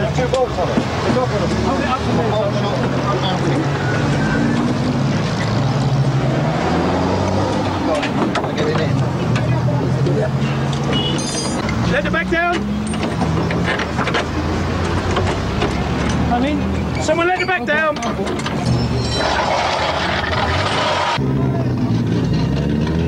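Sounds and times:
metallic knocks: 10.7 - 11.8, 12.5 - 17.2.

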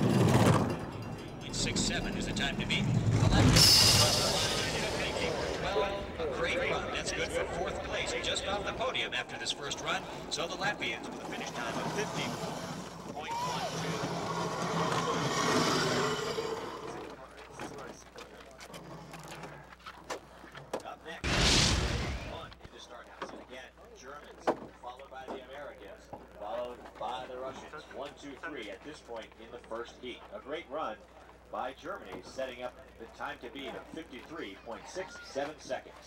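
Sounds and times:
bobsled whooshing past on ice: 0.0 - 17.1
crowd voices: 0.0 - 18.2.

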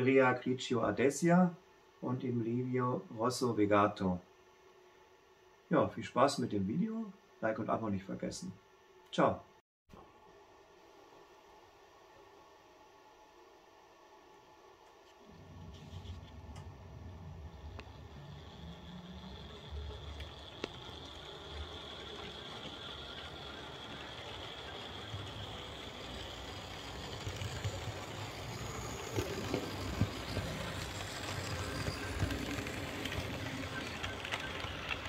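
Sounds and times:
model locomotive whining: 15.2 - 35.0
model train wheels rolling on track: 15.2 - 35.0.

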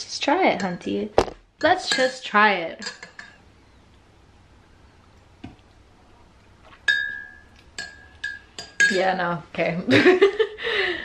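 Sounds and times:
spoon clinking against mug: 6.9 - 9.0.

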